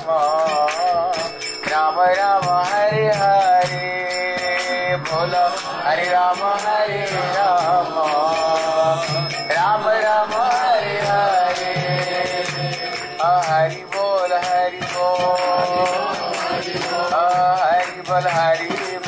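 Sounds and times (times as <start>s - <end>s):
hand cymbals: 0.0s - 19.0s.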